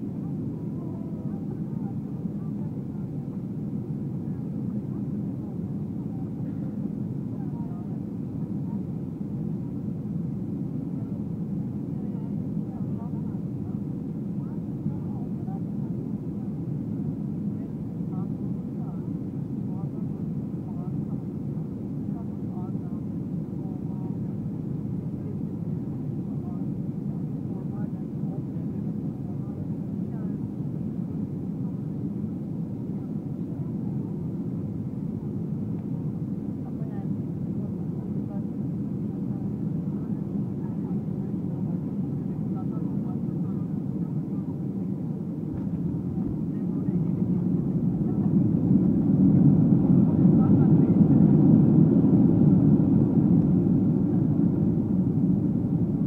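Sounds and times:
faint passenger chatter: 0.0s - 56.0s.

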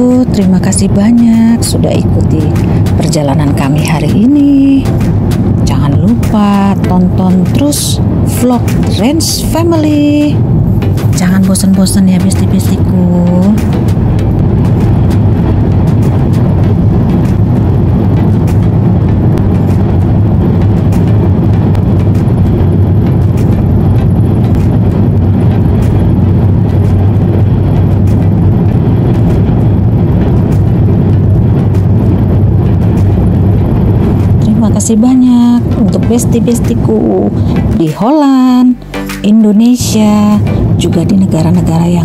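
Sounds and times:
car interior road rumble: 0.0s - 42.0s.

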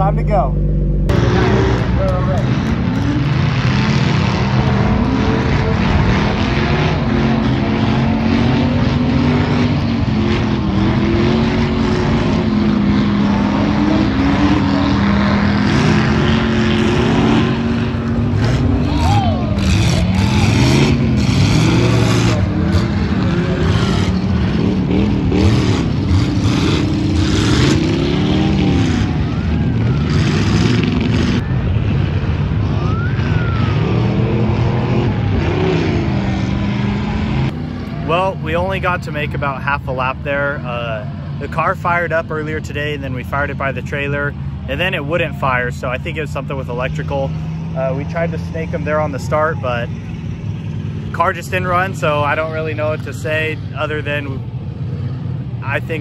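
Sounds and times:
race car engines: 0.0s - 56.0s.

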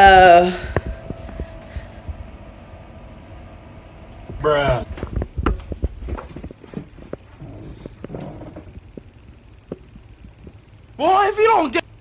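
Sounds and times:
phone handling rumble: 4.1s - 10.6s.

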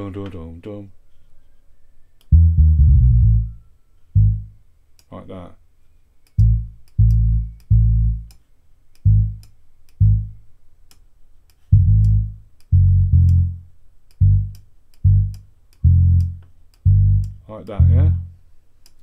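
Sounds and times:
deep reggae bassline: 2.3s - 3.6s, 4.2s - 4.6s, 6.4s - 8.3s, 9.0s - 10.4s, 11.7s - 18.4s.

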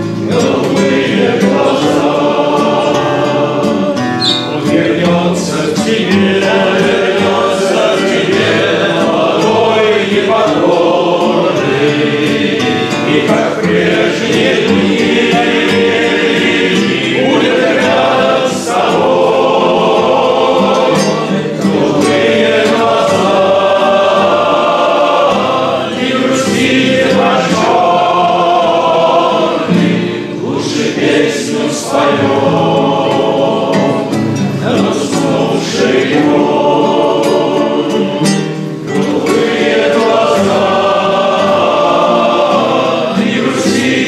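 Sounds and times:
acoustic guitars: 0.0s - 44.0s
group of men singing: 0.0s - 44.0s.

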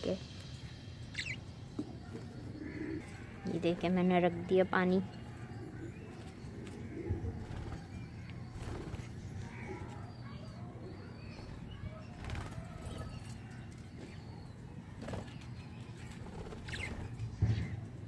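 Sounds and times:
pigeons cooing: 1.2s - 3.6s, 5.4s - 13.4s.

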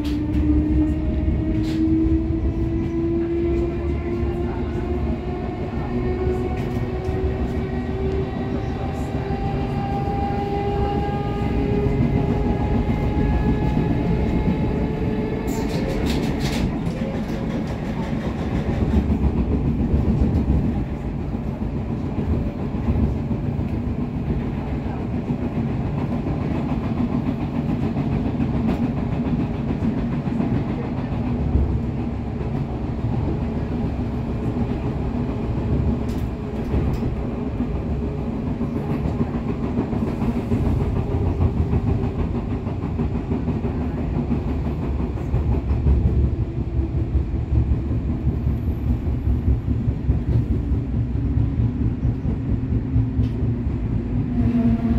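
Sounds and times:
wheels rumbling on rail: 0.0s - 54.9s.

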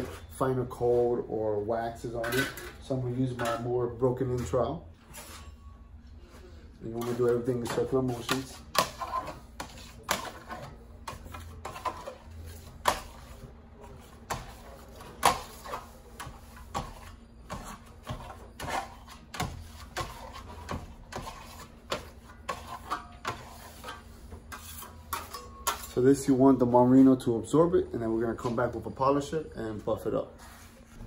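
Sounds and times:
trowel scraping plaster board: 6.9s - 26.0s.

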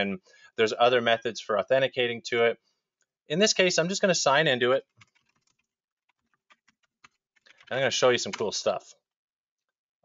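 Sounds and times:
faint keyboard typing: 4.8s - 8.8s.

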